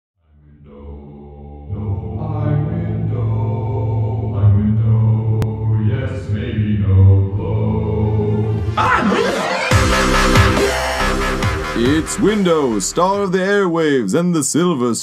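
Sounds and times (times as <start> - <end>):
low droning chant-like music: 0.2 - 11.8.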